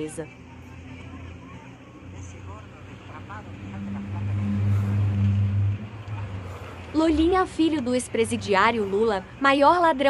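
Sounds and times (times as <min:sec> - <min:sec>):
faint crowd voices: 0:00.0 - 0:10.0
car engine running: 0:00.6 - 0:09.5.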